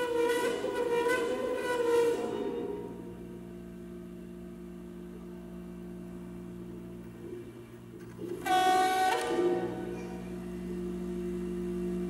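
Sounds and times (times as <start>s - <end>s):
low drone of tube instrument: 0.0s - 12.0s.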